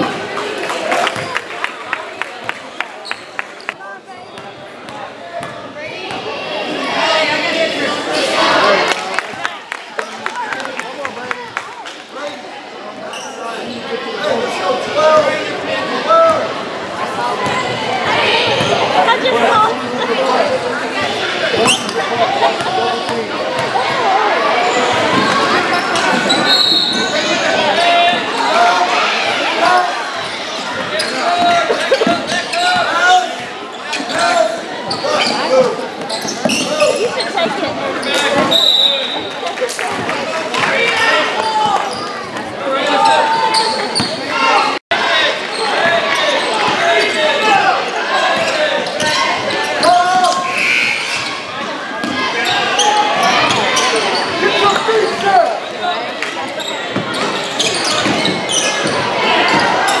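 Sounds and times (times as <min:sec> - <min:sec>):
people talking and calling out: 0:00.0 - 1:00.0.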